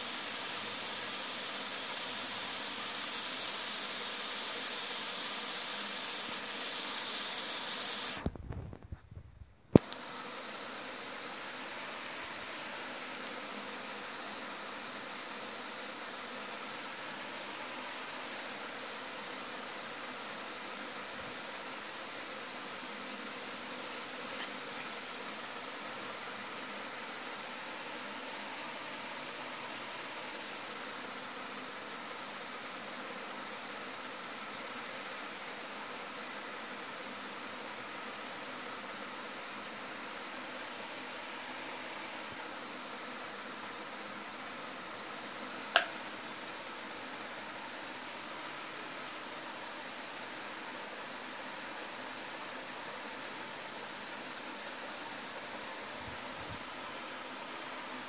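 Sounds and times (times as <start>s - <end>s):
room background hiss: 0.0s - 58.0s.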